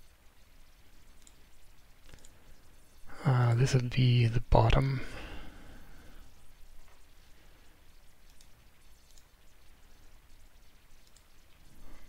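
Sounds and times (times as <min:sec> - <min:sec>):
steady low hum: 0:00.0 - 0:12.0
computer mouse clicks: 0:01.1 - 0:02.4, 0:08.2 - 0:09.4, 0:11.0 - 0:11.5.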